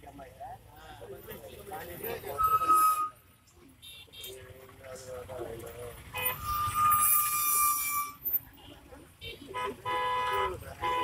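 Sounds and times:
people's voices: 0:00.0 - 0:06.8
vehicle horns tooting: 0:02.3 - 0:04.5, 0:06.1 - 0:11.0.

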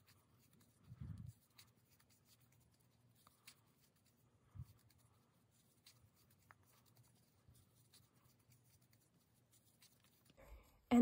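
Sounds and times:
crochet hook scratching yarn: 0:00.0 - 0:11.0.

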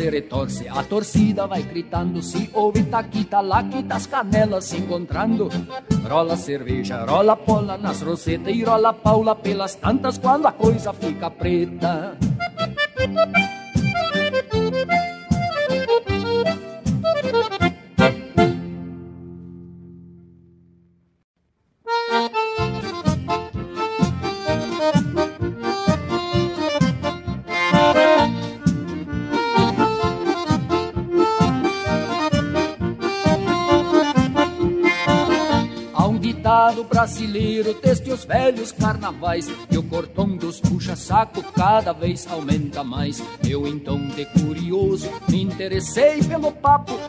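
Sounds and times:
bass and rhythm backing: 0:00.0 - 0:19.0, 0:21.9 - 0:47.0
accordion melody: 0:00.0 - 0:20.5, 0:21.8 - 0:47.0
steady beat: 0:12.2 - 0:18.6, 0:22.3 - 0:40.0.

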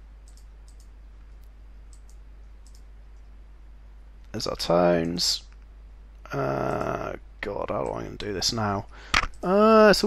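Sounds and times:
computer mouse clicking: 0:00.2 - 0:03.3.

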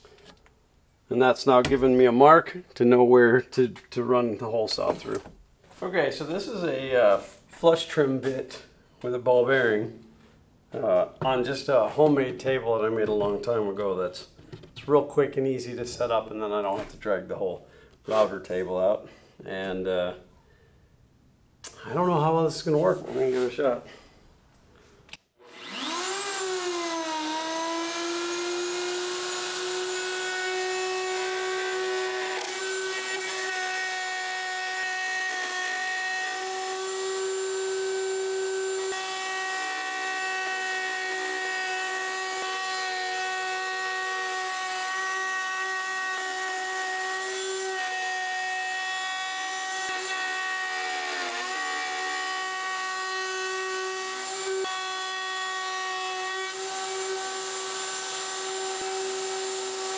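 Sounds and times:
electric router whining: 0:25.4 - 0:59.9.

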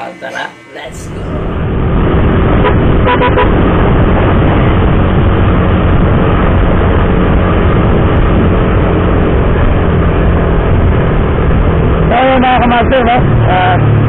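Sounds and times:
motorcycle engine running: 0:01.1 - 0:14.0
wind rushing over microphone: 0:01.1 - 0:14.0.

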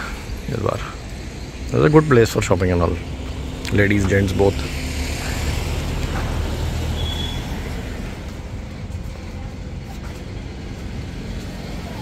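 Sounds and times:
low outdoor rumble: 0:00.0 - 0:12.0.

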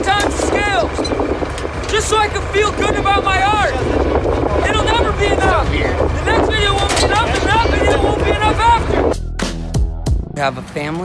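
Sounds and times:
wind buffeting microphone: 0:00.0 - 0:09.2
man speaking: 0:10.3 - 0:11.0.

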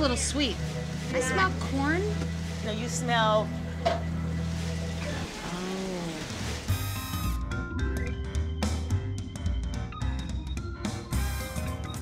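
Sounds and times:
cooking sizzle: 0:00.0 - 0:07.4
theme music with a beat: 0:06.7 - 0:12.0.

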